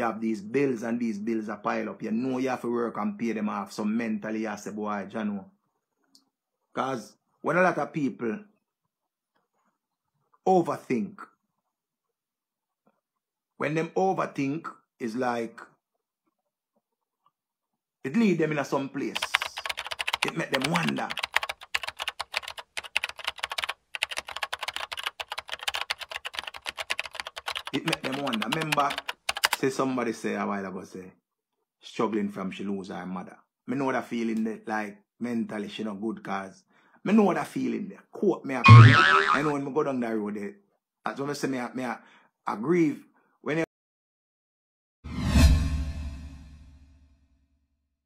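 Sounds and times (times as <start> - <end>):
fast continuous clicking: 19.2 - 29.6.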